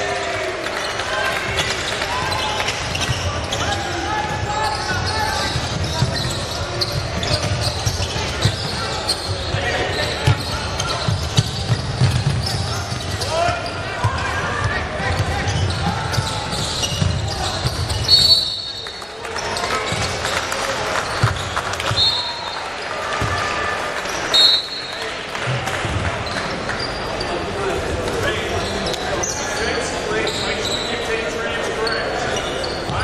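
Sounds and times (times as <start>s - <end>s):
people shouting and chattering: 0.0s - 33.0s
basketball bouncing on court: 1.5s - 18.2s, 21.0s - 22.0s, 23.1s - 23.5s
referee whistle blasts: 18.0s - 18.9s, 21.9s - 22.6s, 24.3s - 25.0s.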